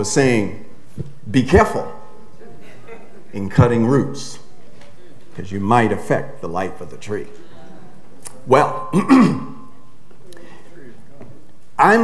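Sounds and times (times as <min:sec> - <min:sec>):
man clearing his throat: 0:08.9 - 0:09.6.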